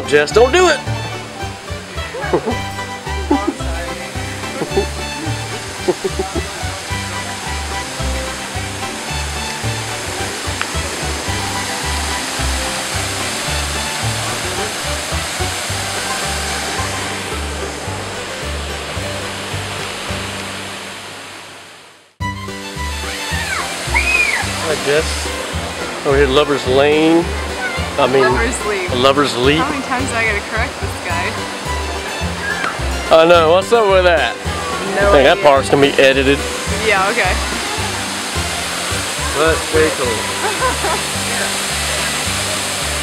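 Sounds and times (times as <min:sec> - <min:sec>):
background music with bass line: 0:00.0 - 0:20.8, 0:22.2 - 0:43.0
waterfall rushing water: 0:00.0 - 0:43.0
person speaking: 0:27.9 - 0:30.5, 0:33.1 - 0:37.9.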